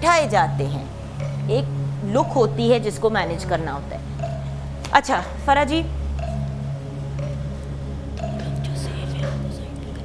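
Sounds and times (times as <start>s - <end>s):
low background music: 0.0s - 10.0s
woman whispering: 8.4s - 10.0s.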